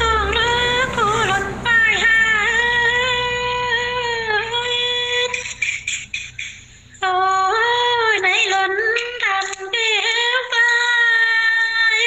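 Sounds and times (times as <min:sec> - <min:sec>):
woman singing: 0:00.0 - 0:05.8, 0:07.0 - 0:12.0.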